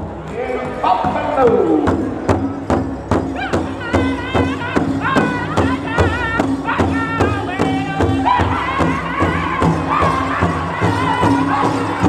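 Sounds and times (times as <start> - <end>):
large drum struck in unison: 1.0 - 12.0.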